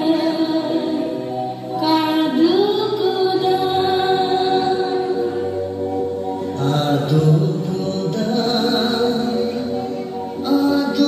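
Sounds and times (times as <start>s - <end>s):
low voice singing: 6.4s - 11.0s.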